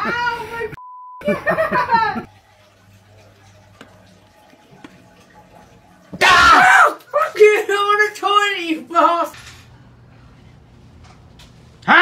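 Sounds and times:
woman screaming: 6.2 - 7.4.

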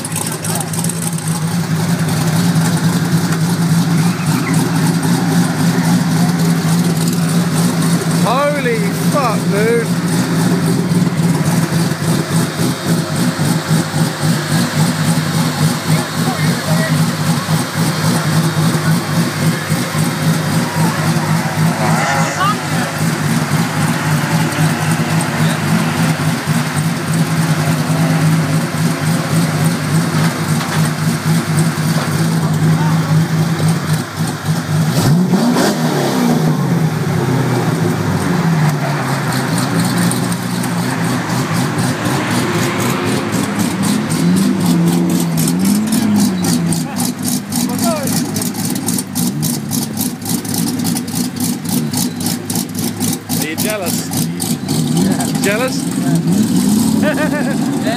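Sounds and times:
car engine idling: 0.0 - 57.9
engine revving: 0.0 - 57.9.

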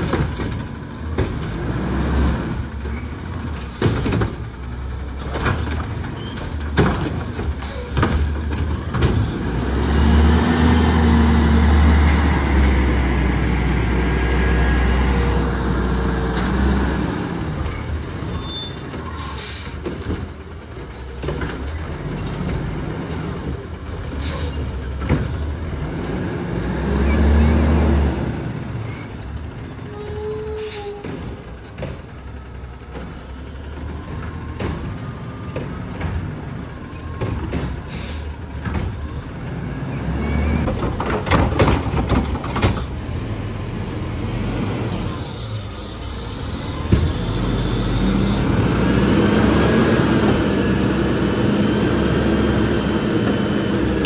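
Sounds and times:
garbage truck diesel engine revving: 0.0 - 3.4, 8.2 - 18.3, 21.7 - 29.6, 41.4 - 54.0
air brake hisses: 37.9 - 38.4.

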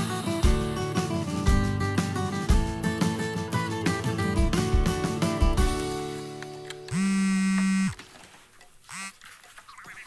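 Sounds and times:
guitar music: 0.0 - 7.9
phone buzzing ringtone: 6.9 - 8.0, 8.9 - 10.0.

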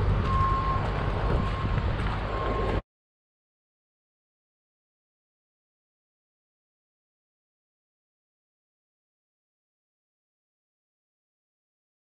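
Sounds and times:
engine running: 0.0 - 2.8
vehicle backup alarm beeping: 0.0 - 2.8.

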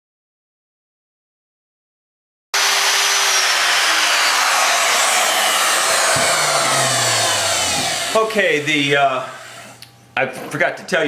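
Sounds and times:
electric router cutting wood: 2.6 - 9.9.

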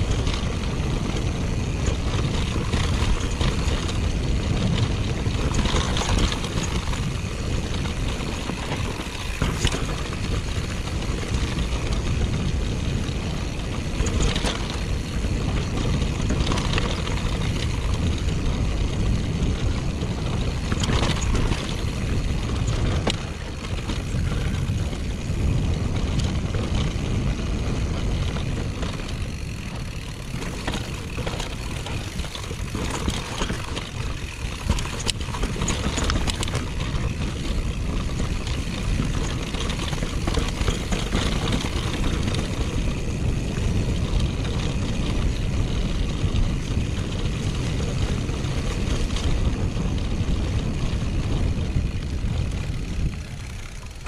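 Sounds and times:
bike clicks and rattles: 0.0 - 54.0
tyres rumbling on dirt: 0.0 - 54.0
wind on microphone: 0.0 - 54.0.

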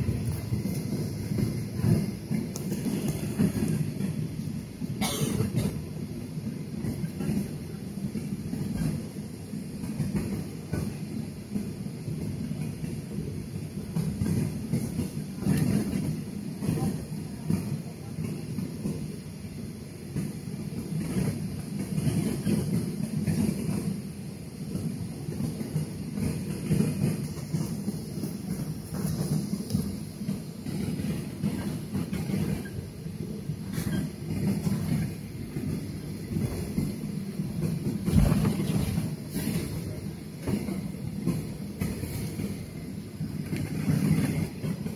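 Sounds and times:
airliner cabin rumble: 0.0 - 44.9.

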